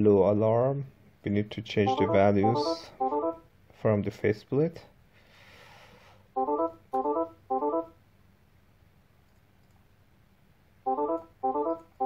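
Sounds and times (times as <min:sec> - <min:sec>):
electronic alarm tone: 0:01.9 - 0:03.4.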